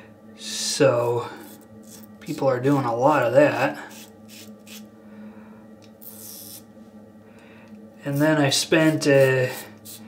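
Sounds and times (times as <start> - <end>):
razor scraping stubble: 1.0 - 3.3, 3.9 - 4.9, 8.1 - 10.0.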